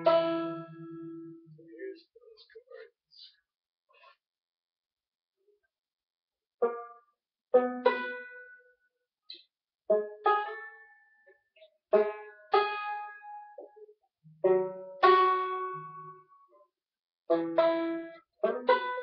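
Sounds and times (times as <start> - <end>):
banjo chords picked slowly: 0.0 - 1.7, 6.6 - 7.0, 7.6 - 8.6, 9.9 - 11.0, 11.9 - 16.4, 17.3 - 19.0.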